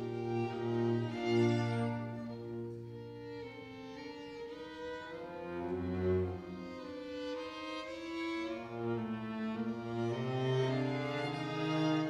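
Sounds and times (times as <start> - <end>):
string quartet bowed chords: 0.0 - 12.0.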